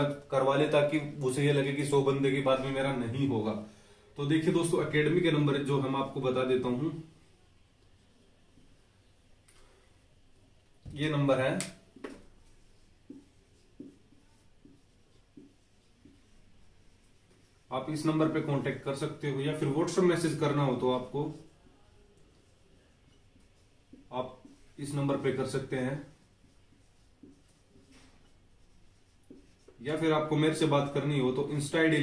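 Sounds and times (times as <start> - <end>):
marker pen writing on whiteboard: 4.4 - 32.0
marker pen taps: 10.8 - 12.4, 13.0 - 16.3, 26.8 - 27.6, 29.2 - 29.8.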